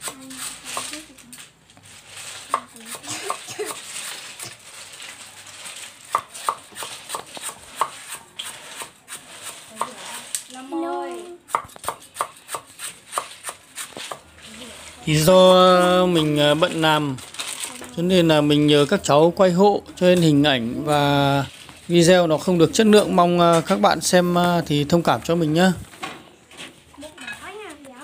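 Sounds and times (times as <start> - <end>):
knife chopping on wooden board: 6.1 - 9.9, 11.5 - 14.2.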